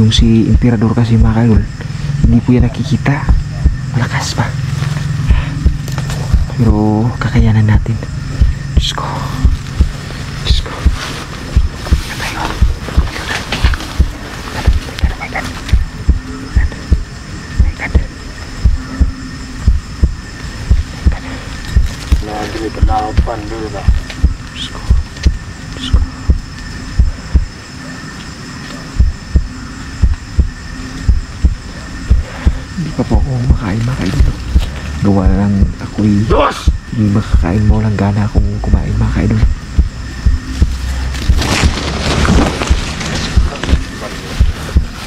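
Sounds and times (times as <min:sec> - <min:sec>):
low dull thumps: 0:00.0 - 0:22.2, 0:22.8 - 0:27.8, 0:28.9 - 0:45.0.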